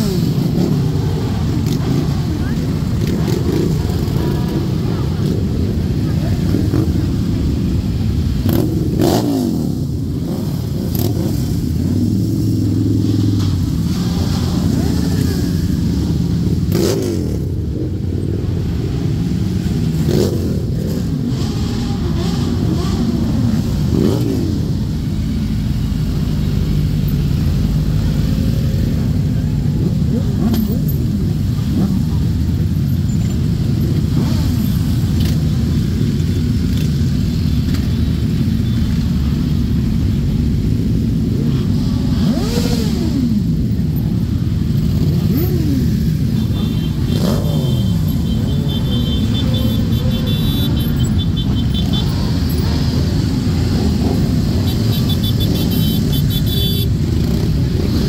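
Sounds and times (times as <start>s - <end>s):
motorcycle engines droning: 0.0s - 58.0s
motorcycle revving: 0.0s - 58.0s.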